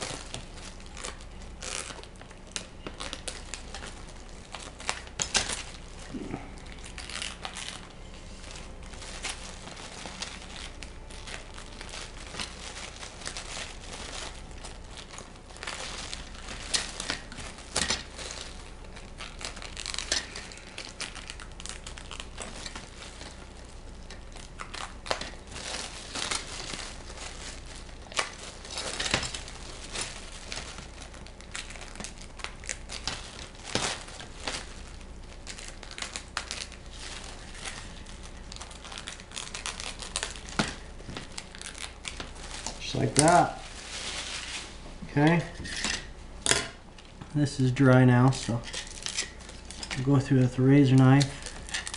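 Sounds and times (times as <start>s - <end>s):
plastic film crinkling: 0.0s - 51.9s.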